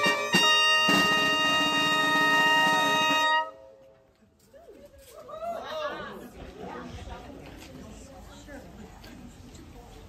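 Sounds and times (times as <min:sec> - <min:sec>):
bagpipes holding a chord: 0:00.0 - 0:03.8
trumpets holding a chord: 0:00.0 - 0:03.9.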